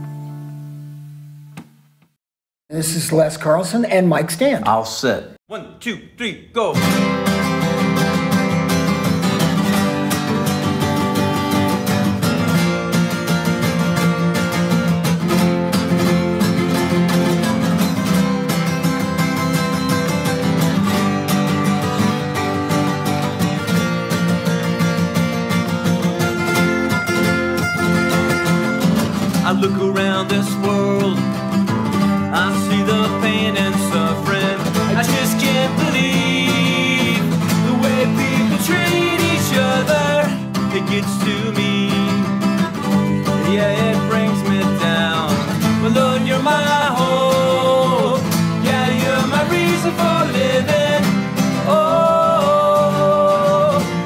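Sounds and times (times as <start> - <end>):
acoustic guitars strummed and picked: 0.0 - 1.8, 6.8 - 54.0.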